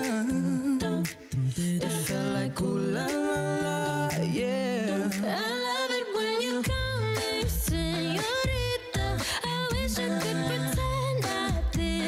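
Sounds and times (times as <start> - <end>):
beatboxed percussion: 0.0 - 12.0
female vocal group singing harmonies: 0.0 - 12.0.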